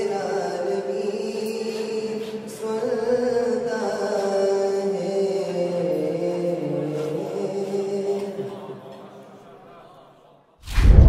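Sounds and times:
man singing through a microphone: 0.0 - 9.0.

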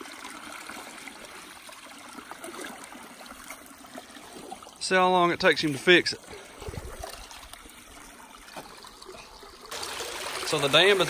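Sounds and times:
water trickling: 0.0 - 11.0.

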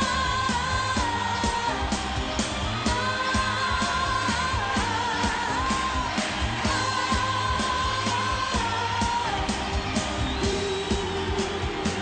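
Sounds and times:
live pop band music: 0.0 - 12.0
steady drum beat: 0.0 - 12.0.

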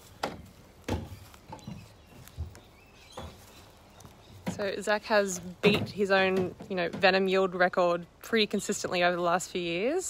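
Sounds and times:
plastic and metal knocks: 0.2 - 2.5, 4.4 - 7.2.

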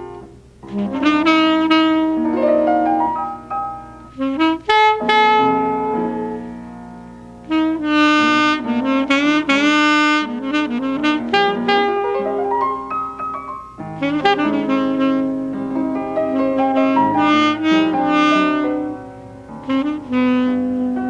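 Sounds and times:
alto saxophone jazz melody: 0.0 - 21.0
piano accompaniment: 0.0 - 21.0.

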